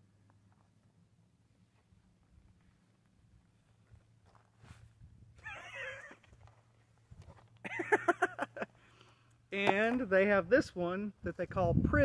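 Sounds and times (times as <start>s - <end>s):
animal whining: 5.4s - 6.3s.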